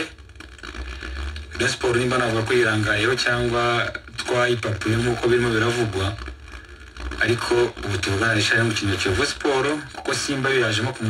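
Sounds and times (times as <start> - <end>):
person talking: 1.5 - 6.2, 7.2 - 11.0.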